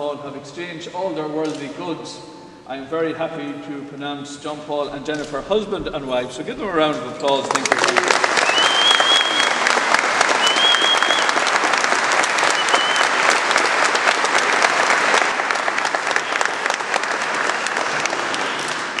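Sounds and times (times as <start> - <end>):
congregation clapping: 6.8 - 19.0
high whistles: 8.3 - 11.5, 12.4 - 13.2.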